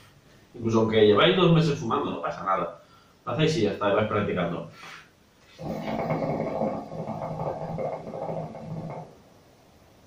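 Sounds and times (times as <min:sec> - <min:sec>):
hookah water bubbling: 0:05.5 - 0:09.4.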